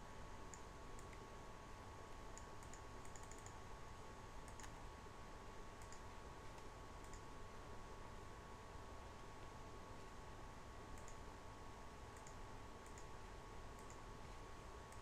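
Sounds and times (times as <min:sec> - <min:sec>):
low electrical hum with whine: 0:00.0 - 0:15.0
faint mouse clicks: 0:00.5 - 0:01.3, 0:02.3 - 0:03.6, 0:04.4 - 0:04.8, 0:05.8 - 0:07.3, 0:10.9 - 0:11.3, 0:12.1 - 0:14.1.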